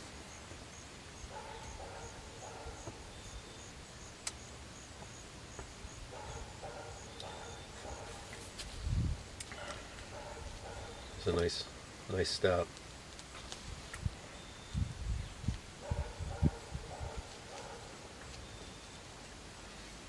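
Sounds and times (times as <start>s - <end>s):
quiet outdoor ambience: 0.0s - 20.0s
faint dog barking: 1.3s - 3.1s, 6.1s - 8.5s, 9.5s - 11.3s, 15.8s - 18.2s
faint high chirp: 14.3s - 15.3s, 18.3s - 19.0s.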